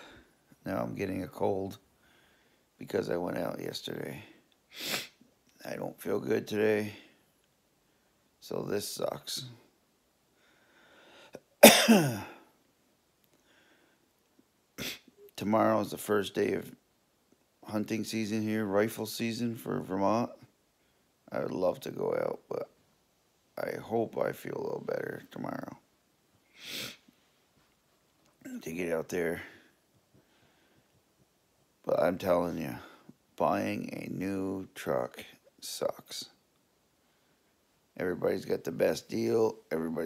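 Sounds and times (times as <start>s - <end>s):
faint breath in: 0.0s - 0.5s, 2.0s - 2.8s, 10.3s - 11.4s, 13.4s - 14.1s, 29.4s - 31.0s
man talking: 0.0s - 1.8s, 2.8s - 4.4s, 5.5s - 7.1s, 8.4s - 9.7s, 15.3s - 16.8s, 17.6s - 20.5s, 21.3s - 22.8s, 23.6s - 25.9s, 28.4s - 29.7s, 31.8s - 36.4s, 38.0s - 40.0s
man coughing: 11.4s - 12.4s.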